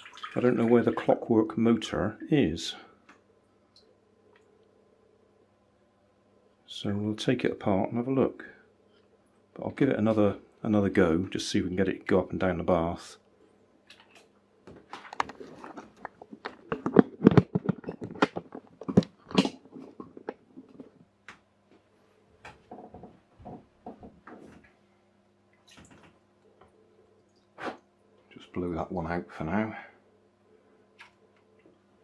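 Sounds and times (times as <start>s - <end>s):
faint steady hum: 0.0s - 32.0s.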